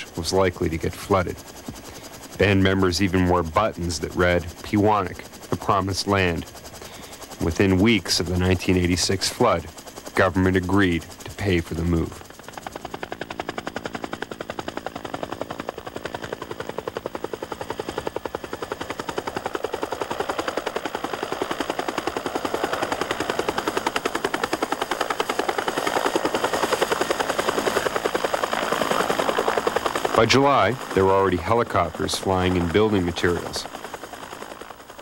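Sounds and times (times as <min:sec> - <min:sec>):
helicopter rotor thudding: 0:00.0 - 0:35.0.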